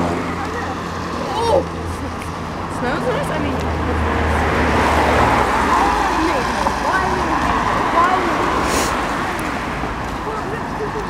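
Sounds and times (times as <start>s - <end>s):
car engine and tyre noise: 0.0s - 11.0s
faint voices talking: 0.0s - 11.0s.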